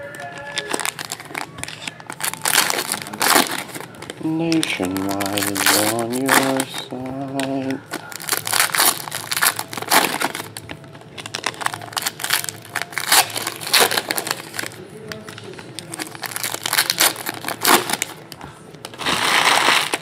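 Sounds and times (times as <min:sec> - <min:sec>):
foil wrappers crinkling: 0:00.0 - 0:20.0.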